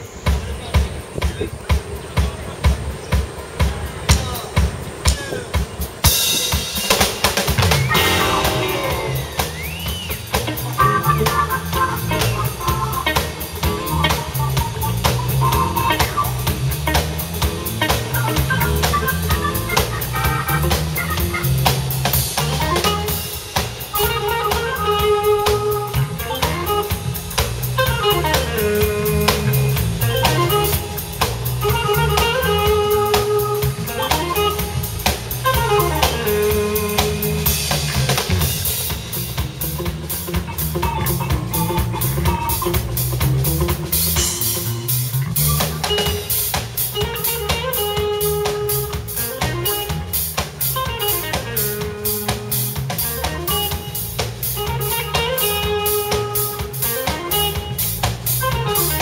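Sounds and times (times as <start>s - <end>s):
band playing instrumental jam: 0.0s - 59.0s.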